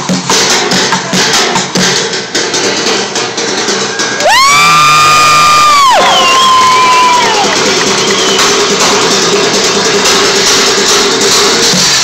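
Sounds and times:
crowd cheering: 3.7s - 9.2s
loud high-pitched whoop: 4.0s - 8.5s.

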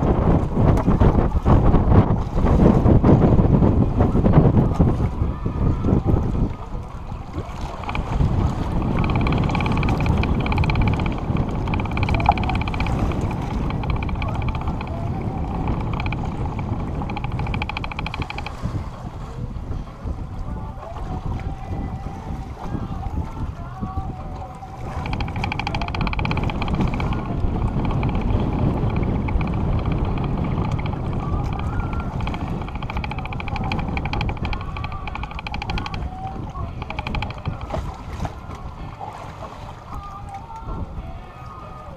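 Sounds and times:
wind buffeting microphone: 0.0s - 41.9s
high buzz: 7.8s - 18.5s, 24.9s - 37.7s.

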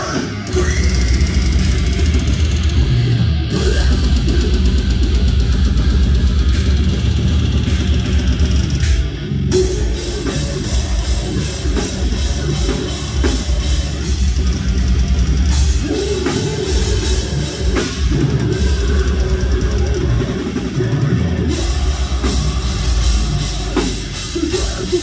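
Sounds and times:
heavy metal band playing live: 0.0s - 25.0s.

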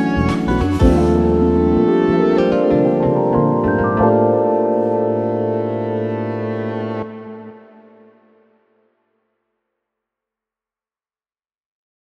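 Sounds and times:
steady bass note: 0.0s - 7.6s
synthesizer chord: 0.0s - 9.2s.

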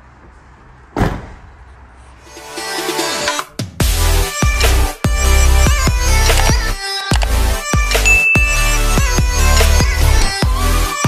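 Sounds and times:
vehicle door slamming: 0.9s - 1.7s.

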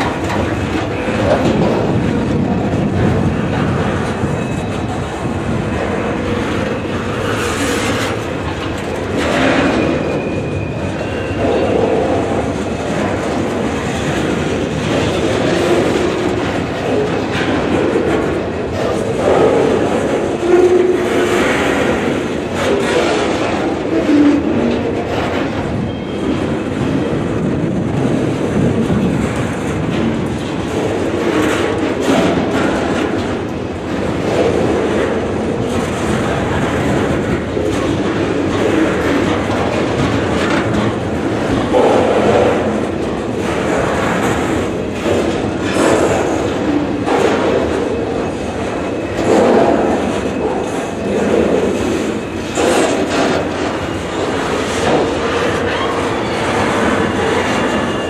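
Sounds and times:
train wheels clattering over rail joints: 0.0s - 58.0s.

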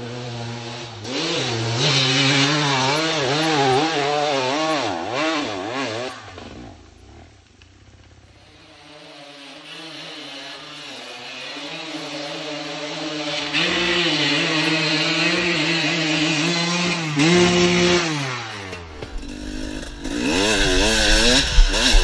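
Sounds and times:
motorcycle engine revving hard: 0.0s - 7.2s, 8.7s - 22.0s
quieter engine: 0.0s - 22.0s.

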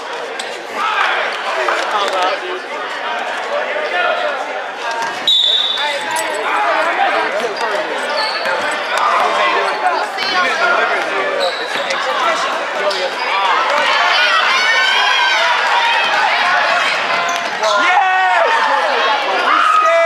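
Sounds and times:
spectators talking: 0.0s - 20.0s.

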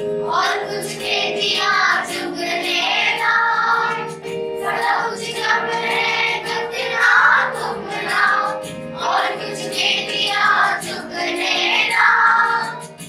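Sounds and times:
children singing folk song: 0.0s - 13.0s.

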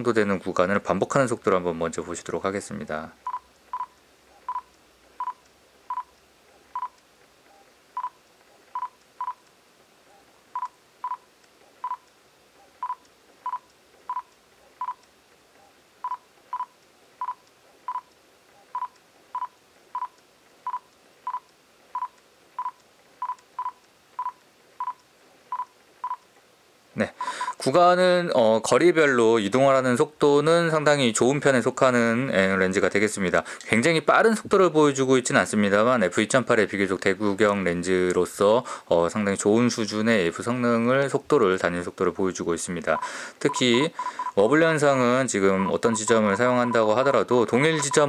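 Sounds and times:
camera focus beeps: 3.2s - 9.4s, 10.1s - 15.0s, 15.6s - 26.3s, 43.0s - 44.4s, 45.6s - 46.9s, 47.7s - 48.0s.

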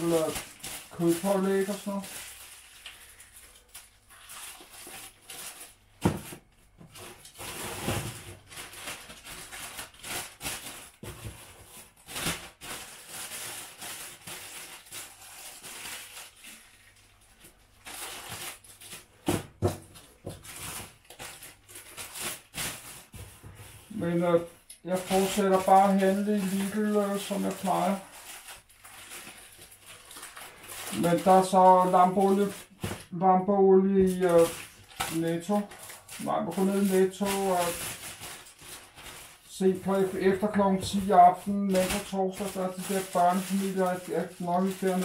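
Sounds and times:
plastic bags rustling: 0.0s - 45.0s.

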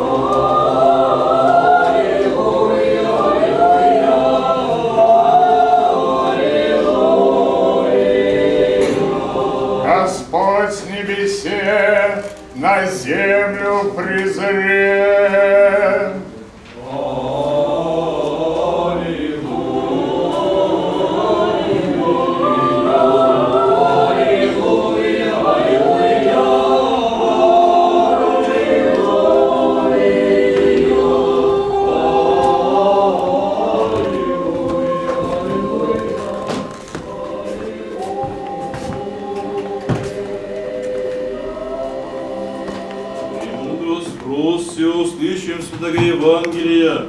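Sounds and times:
choir chanting a cappella: 0.0s - 47.0s.

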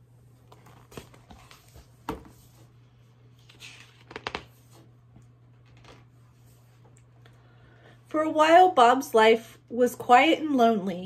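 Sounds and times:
steady low hum: 0.0s - 11.0s
book handling taps and rustles: 0.5s - 2.6s, 3.4s - 6.1s.

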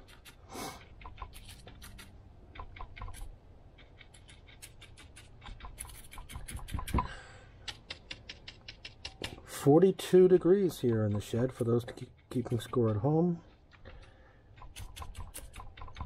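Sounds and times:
paintbrush scratching on wood: 0.0s - 7.0s, 7.7s - 16.0s.

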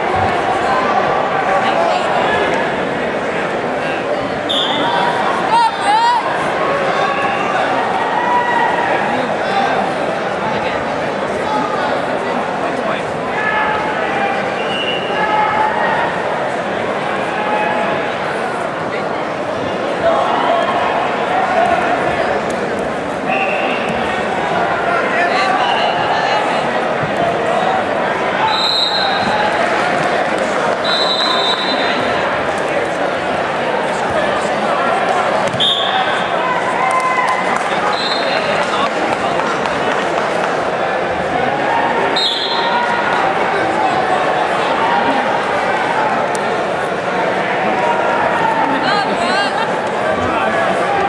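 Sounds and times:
spectators talking and shouting: 0.0s - 51.0s.

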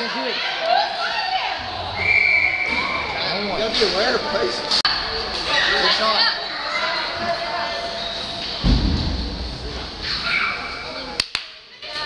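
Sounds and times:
heavy low thud: 8.6s - 10.2s.

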